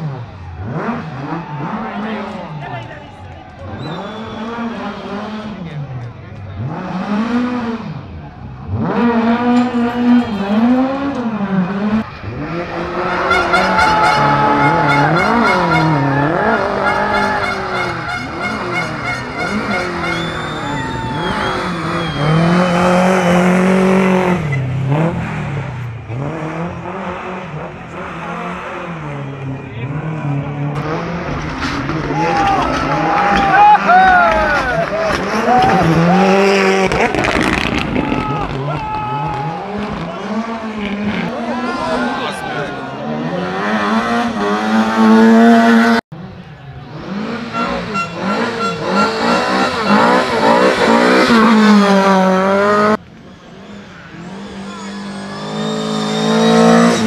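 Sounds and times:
rally car engines revving: 0.0 - 57.0
tyre squeal: 3.7 - 4.6, 13.4 - 23.7, 47.6 - 51.7, 53.2 - 57.0.

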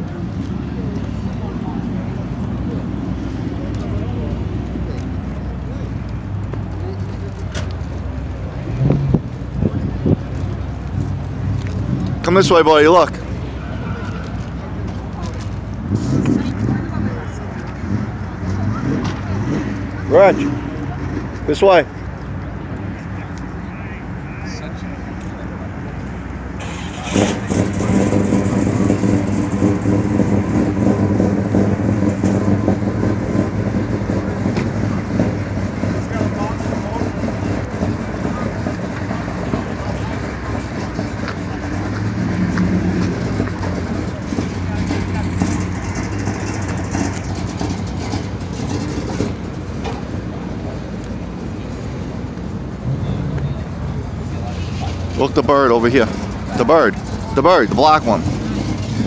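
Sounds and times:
crowd murmur: 0.0 - 59.0
car engine idling: 9.3 - 59.0.

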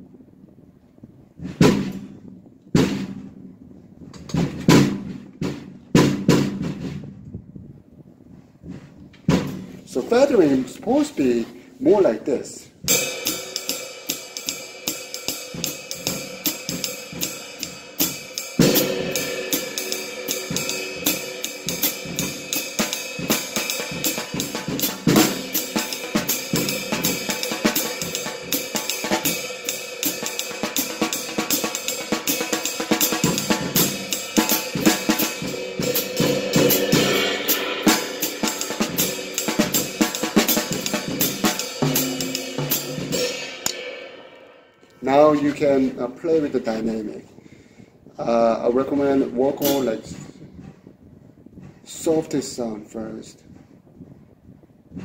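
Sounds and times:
cymbals playing jazz pattern: 12.7 - 45.5.

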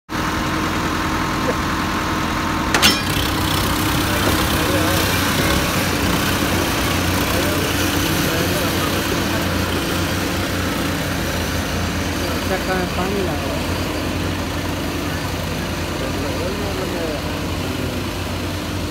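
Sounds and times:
diesel tractor engines under load: 0.1 - 18.9
crowd voices: 2.8 - 18.9.

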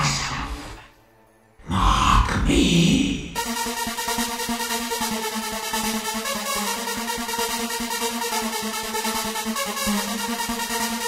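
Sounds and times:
deep vocal sample: 1.6 - 3.4.

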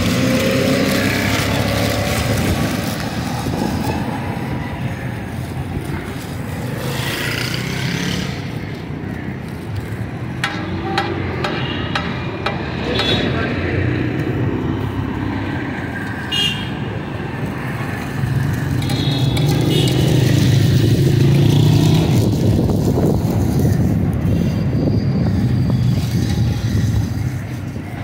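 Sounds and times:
vehicle engine rumbling: 0.0 - 28.0.

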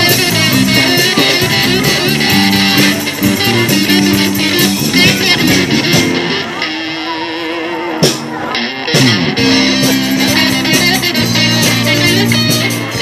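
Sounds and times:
rock band playing: 0.0 - 13.0.

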